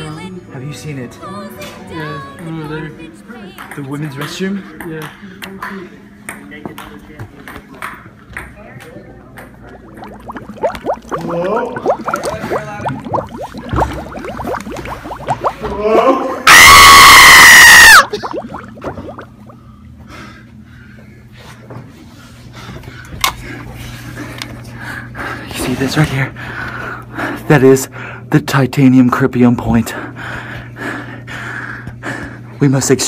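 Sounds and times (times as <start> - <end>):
person screaming: 15.6 - 18.4
person breathing heavily: 30.0 - 32.6.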